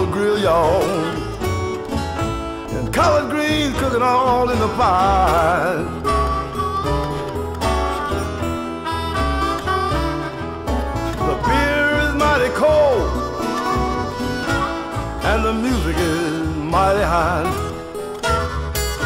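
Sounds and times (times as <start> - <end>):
bass line: 0.0 - 19.0
electric guitar fill: 0.0 - 19.0
person singing blues: 0.0 - 19.0.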